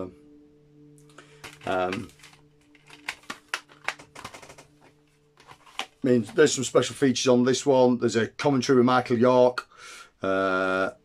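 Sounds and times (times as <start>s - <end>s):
faint low hum: 0.0s - 9.6s
clicks and taps handling packaging: 1.1s - 7.0s.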